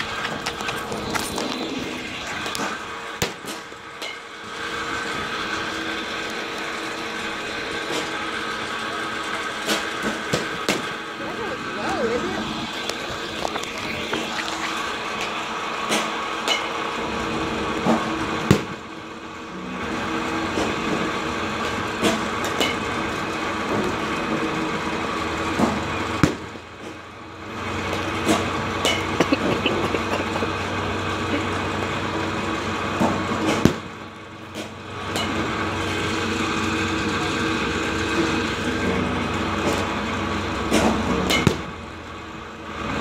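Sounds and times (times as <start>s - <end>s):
pitching machines humming: 0.0s - 43.0s
balls batted striking cage: 17.9s - 18.8s, 27.9s - 30.4s, 33.0s - 35.5s, 40.7s - 41.7s.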